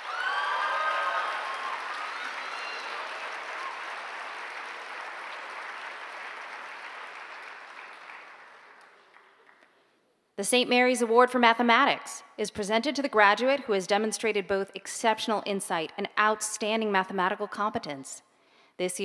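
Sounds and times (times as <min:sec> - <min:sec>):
audience applauding: 0:00.0 - 0:09.8.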